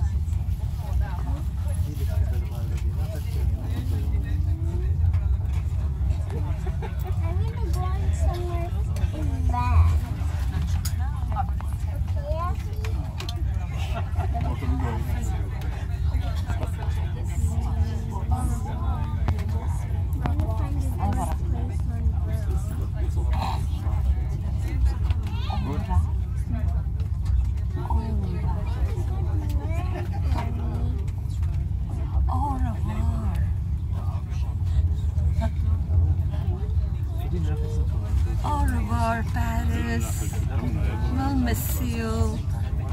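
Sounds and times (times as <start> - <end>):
passengers talking: 0.0 - 42.9
train carriage rumble: 0.0 - 42.9
indistinct voices: 38.3 - 42.9.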